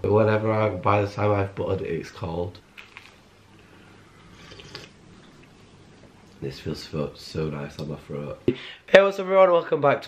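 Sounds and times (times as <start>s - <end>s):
chewing toast: 2.7s - 3.3s, 4.4s - 5.6s
sip from a mug: 4.3s - 5.0s.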